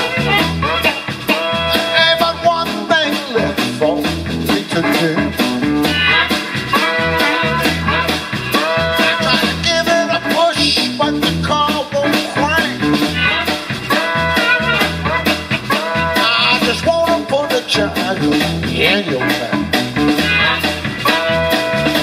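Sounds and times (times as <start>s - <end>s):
bending lead guitar line: 0.0s - 22.0s
blues-rock band playing: 0.0s - 22.0s.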